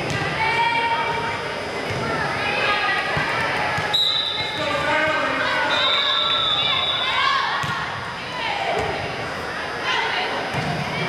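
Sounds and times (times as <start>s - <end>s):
echoing voices in a hall: 0.0s - 11.0s
referee's whistle blasts: 3.9s - 4.6s, 5.5s - 7.3s.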